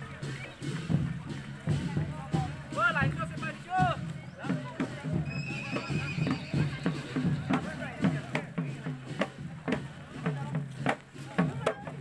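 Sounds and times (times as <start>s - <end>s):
drum beaten in steady rhythm: 0.0s - 12.0s
voices: 0.0s - 12.0s
high whistle-like tone: 5.2s - 6.5s.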